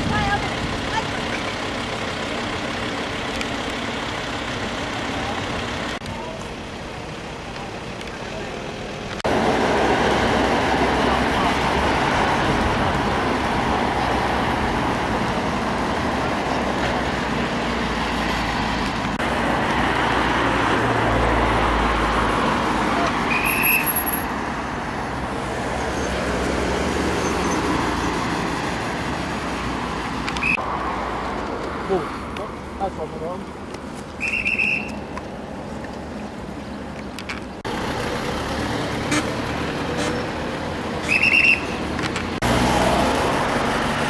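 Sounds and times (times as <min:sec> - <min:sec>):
low engine sound: 0:00.0 - 0:23.3
road traffic passing: 0:00.0 - 0:44.0.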